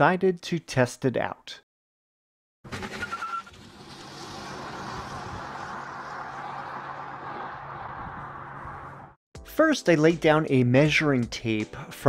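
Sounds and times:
steady rushing vehicle-like noise: 0:03.5 - 0:09.2.

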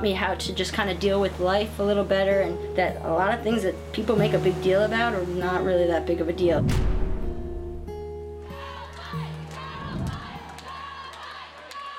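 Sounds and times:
crowd shouting and yelling: 0:08.5 - 0:11.9.

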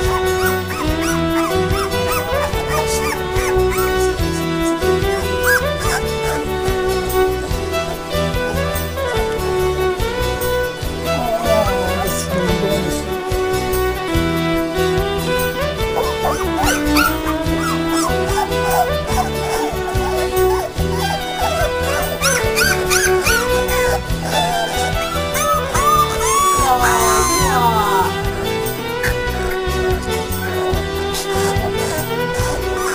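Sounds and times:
puppies whimpering and yipping: 0:00.0 - 0:12.6, 0:15.4 - 0:32.9
background music with held notes: 0:00.0 - 0:32.9.

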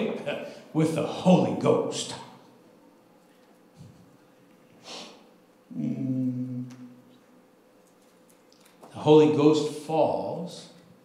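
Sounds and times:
man humming: 0:05.7 - 0:07.0.

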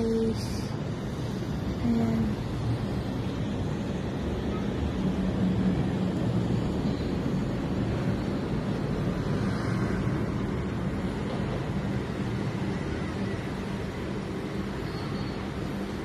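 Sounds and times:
distant city traffic rumble: 0:00.0 - 0:16.0.

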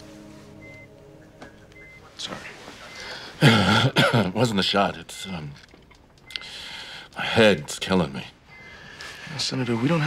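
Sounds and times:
low steady hum: 0:00.0 - 0:10.0
patient monitor beeping: 0:00.2 - 0:10.0.

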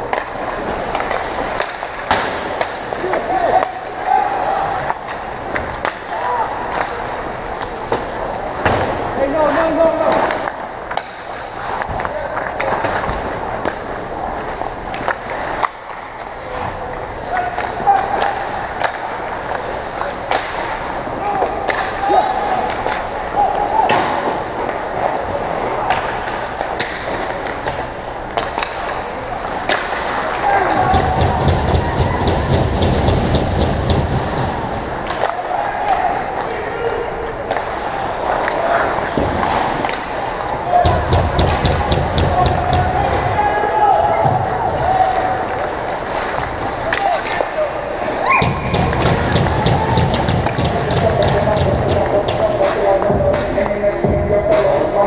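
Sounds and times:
hockey sticks and puck clacking: 0:00.0 - 0:55.0
players shouting: 0:00.8 - 0:10.6, 0:16.3 - 0:27.9, 0:28.5 - 0:55.0
skate blades scraping ice: 0:24.3 - 0:33.4, 0:37.5 - 0:40.6.

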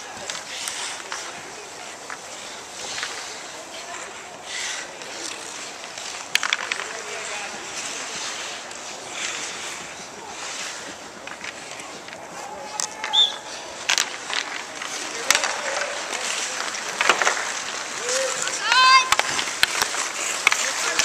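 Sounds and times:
hockey sticks and puck clacking: 0:00.0 - 0:21.0
skate blades scraping ice: 0:00.0 - 0:21.0.

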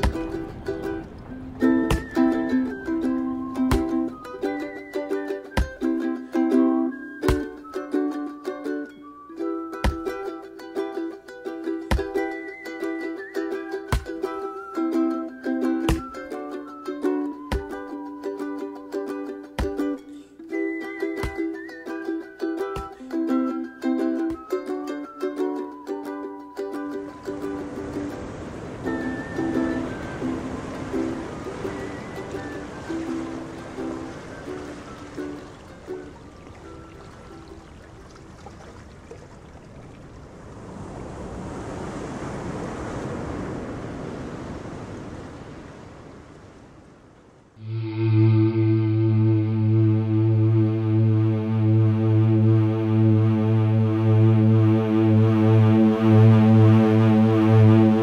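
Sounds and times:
plucked ukulele tune: 0:00.0 - 0:38.4, 0:47.6 - 0:58.0.

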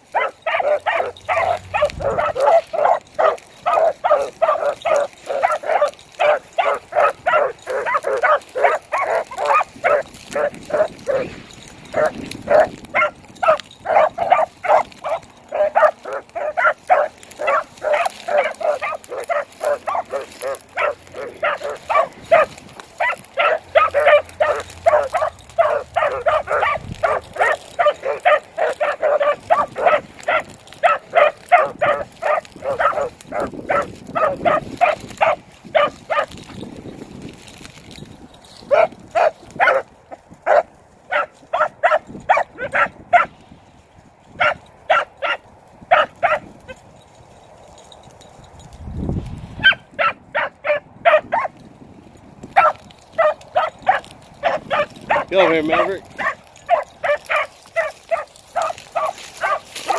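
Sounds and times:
dogs barking and yelping: 0:00.0 - 0:43.4, 0:44.3 - 0:48.2, 0:49.5 - 0:51.7, 0:52.4 - 0:59.9.

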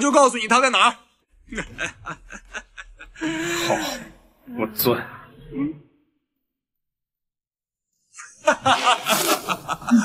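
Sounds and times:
loud laughter: 0:01.4 - 0:04.0, 0:08.2 - 0:10.0.

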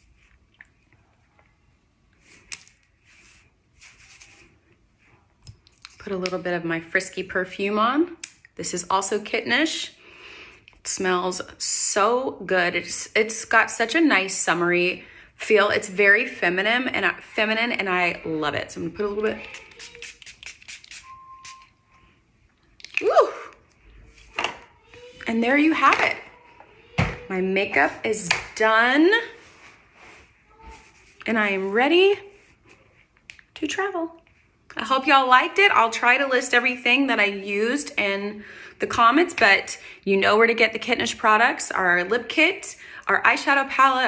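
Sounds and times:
hair rustling: 0:02.2 - 0:04.6, 0:19.0 - 0:21.7.

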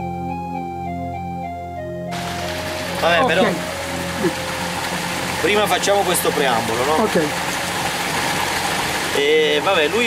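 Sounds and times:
fountain water pouring: 0:02.1 - 0:10.0.

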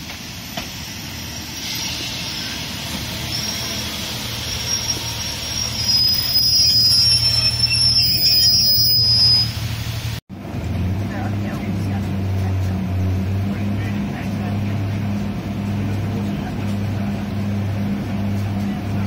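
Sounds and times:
train wheels squealing: 0:00.0 - 0:10.0
diesel engine drone: 0:09.6 - 0:19.0.

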